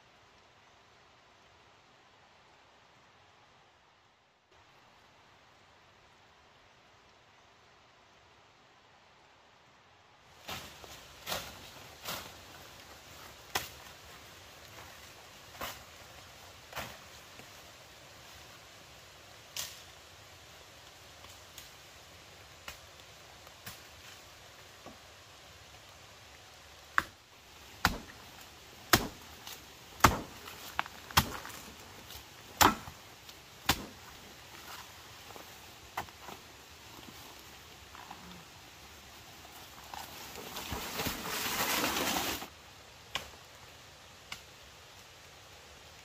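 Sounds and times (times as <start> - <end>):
blade chopping wood: 27.8 - 28.2, 28.9 - 31.7, 32.6 - 33.0, 33.6 - 34.0.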